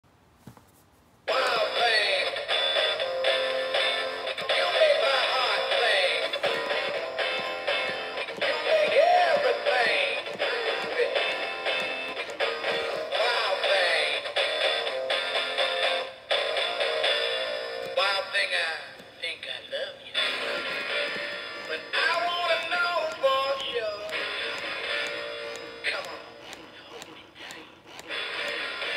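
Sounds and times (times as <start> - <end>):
toy singing through small speaker: 1.3 - 28.9.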